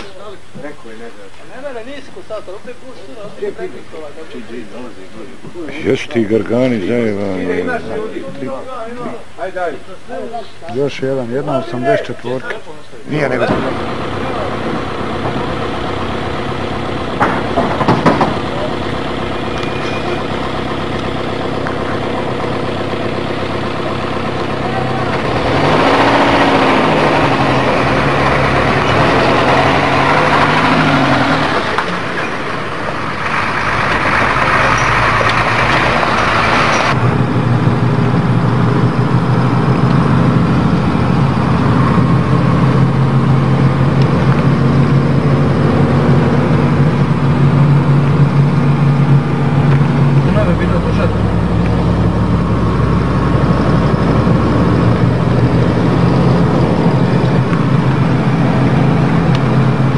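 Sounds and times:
vehicle engines revving: 13.1 - 59.9
loud rushing: 13.2 - 59.9.

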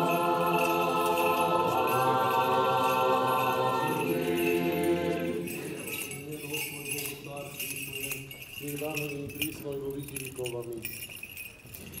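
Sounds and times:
soft choral chanting: 0.0 - 6.3
censer bells jingling: 0.0 - 12.0.

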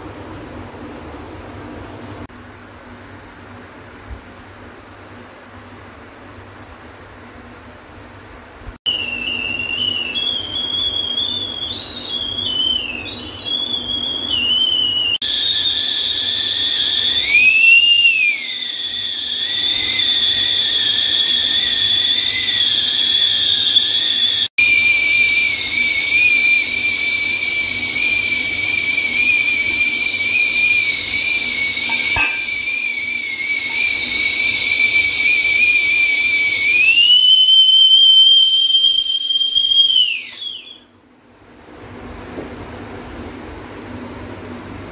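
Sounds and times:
milk boiler whistle: 8.9 - 41.0.

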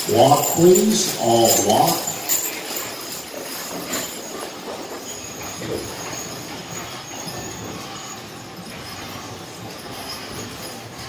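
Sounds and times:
harness rattling: 0.0 - 11.0
wagon wheels rolling and rattling: 0.0 - 11.0.

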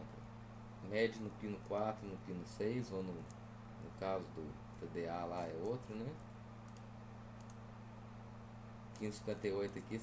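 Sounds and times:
low electrical hum: 0.0 - 10.0
faint computer clicks: 4.7 - 7.6, 9.0 - 10.0.

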